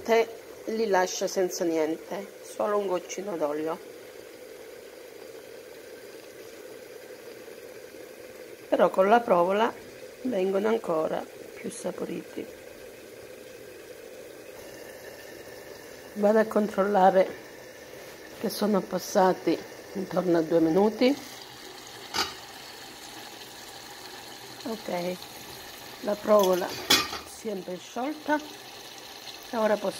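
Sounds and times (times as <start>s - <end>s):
pot simmering with faint hiss: 0.0s - 29.9s.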